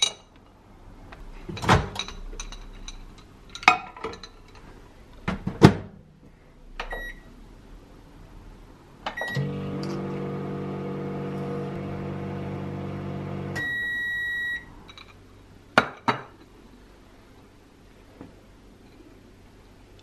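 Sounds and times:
microwave keypad beeps: 6.9 - 7.2, 13.6 - 14.7
microwave oven humming: 9.2 - 14.9.

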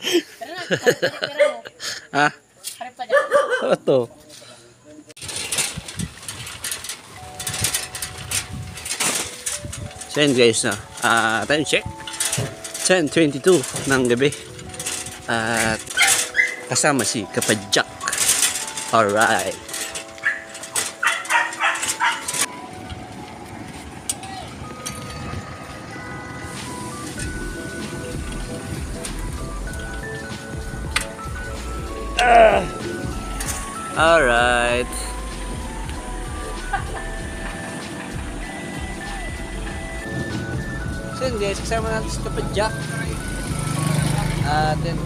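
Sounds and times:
dog barking: 3.1 - 3.8, 20.2 - 22.3
faint music with held notes: 6.9 - 45.0
low engine rumble: 21.9 - 45.0.

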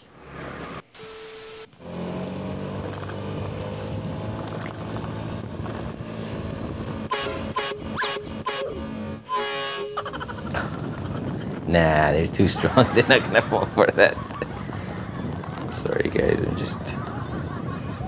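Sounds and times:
air horn blasts: 7.0 - 10.1.

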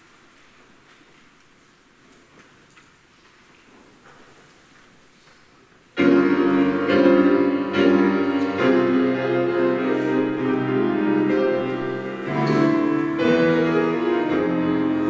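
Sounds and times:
faint room noise: 0.0 - 15.0
piano chords: 6.0 - 15.0.

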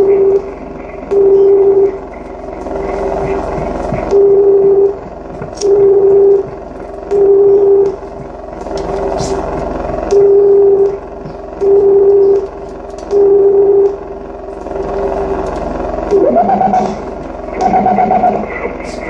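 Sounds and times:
pulsing electronic hum: 0.0 - 19.0.

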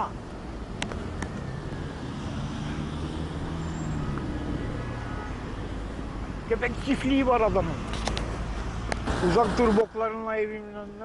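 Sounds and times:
engine hum: 0.0 - 10.0
low rumble of road vehicles: 0.0 - 11.0.

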